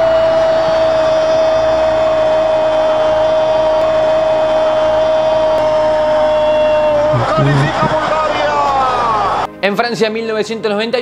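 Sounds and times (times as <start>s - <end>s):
stadium crowd noise: 0.0s - 9.5s.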